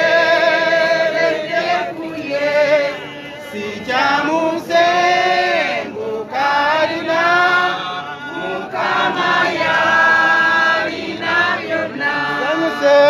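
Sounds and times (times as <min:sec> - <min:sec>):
group singing without instruments: 0:00.0 - 0:13.0.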